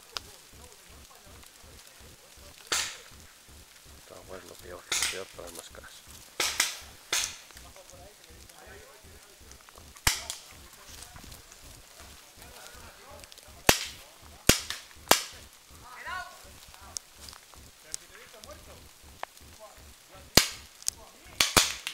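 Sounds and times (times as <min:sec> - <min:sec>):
paintball marker shots: 0:06.4 - 0:07.6, 0:10.0 - 0:10.5, 0:21.4 - 0:21.9.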